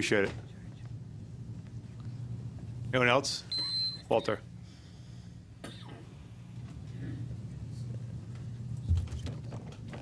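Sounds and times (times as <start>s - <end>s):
low steady hum: 0.0s - 10.0s
person coughing: 5.6s - 6.1s.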